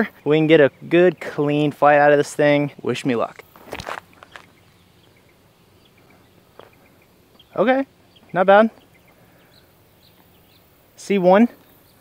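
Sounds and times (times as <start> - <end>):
insects: 0.0 - 12.0
feet clicking on concrete: 3.4 - 4.6
high bird chirps: 4.1 - 10.9.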